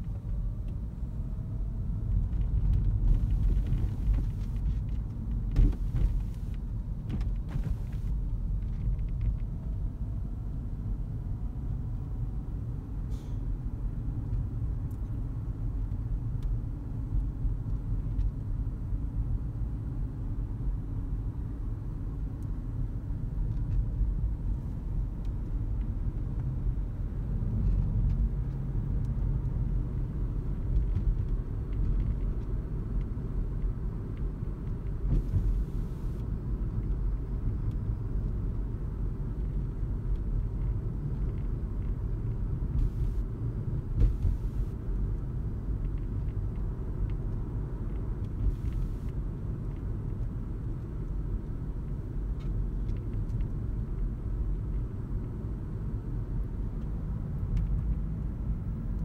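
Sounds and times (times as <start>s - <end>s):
car cabin rumble: 0.0s - 12.4s, 33.1s - 36.8s, 40.2s - 49.2s
faint brief hisses: 13.1s - 13.4s.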